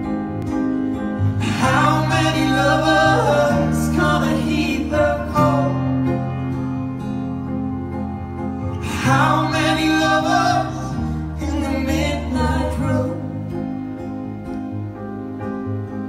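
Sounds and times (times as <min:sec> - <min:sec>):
acoustic guitar: 0:00.0 - 0:16.0
band chords: 0:00.0 - 0:16.0
man singing: 0:01.4 - 0:06.3, 0:08.8 - 0:13.6.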